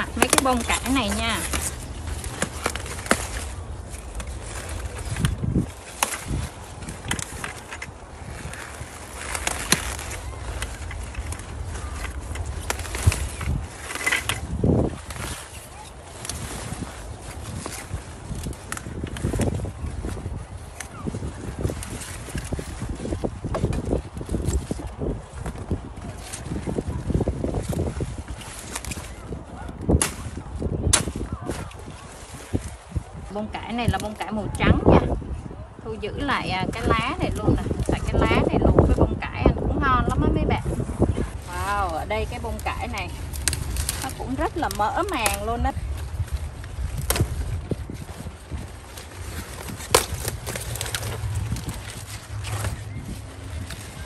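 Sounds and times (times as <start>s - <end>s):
crisp snaps: 0.0s - 14.4s, 42.3s - 54.0s
wind rumble on microphone: 0.0s - 54.0s
plant stalk snapping: 47.0s - 47.4s, 49.6s - 52.6s.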